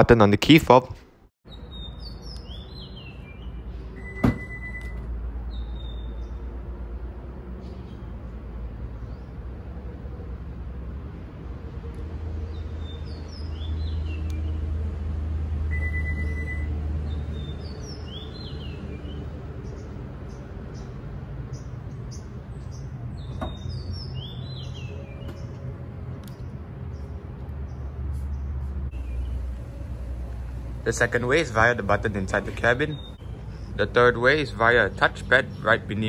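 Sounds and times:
birds chirping: 1.5 - 4.8, 5.4 - 6.6, 7.5 - 9.7, 12.0 - 36.0
single beep: 15.7 - 16.7
low motor hum: 24.9 - 36.0.

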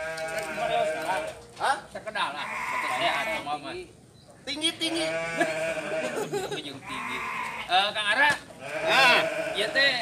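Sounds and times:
sheep bleating: 0.0 - 1.4, 2.3 - 3.6, 4.9 - 8.0, 8.6 - 10.0.

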